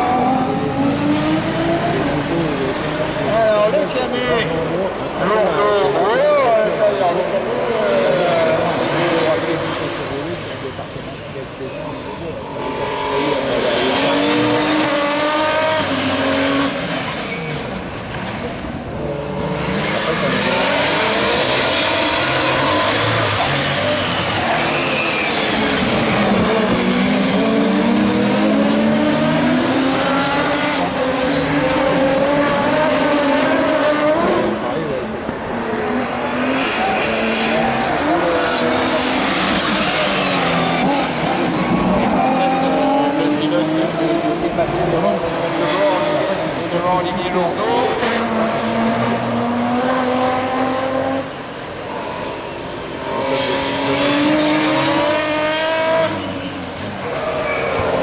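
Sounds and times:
racing car engines revving: 0:00.0 - 0:58.0.

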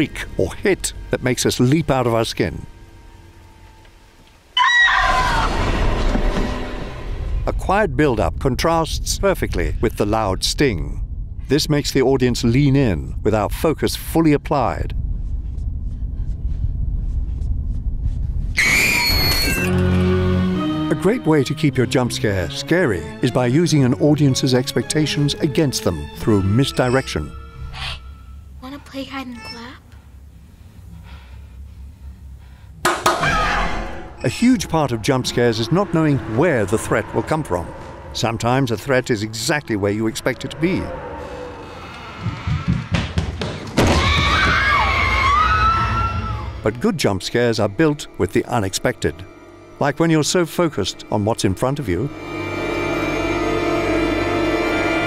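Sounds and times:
low rumbling drone: 0:00.0 - 0:04.6, 0:05.3 - 0:29.0, 0:30.0 - 0:42.6, 0:45.3 - 0:55.0
loud high shriek: 0:04.6 - 0:07.2, 0:18.6 - 0:19.8, 0:33.2 - 0:42.6
low thuds: 0:05.6 - 0:18.6.

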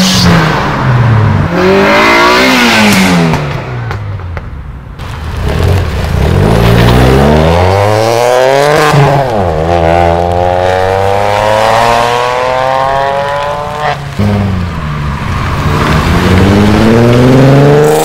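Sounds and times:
car engine revving through gears: 0:00.0 - 0:03.7, 0:05.4 - 0:14.6, 0:15.4 - 0:18.0.

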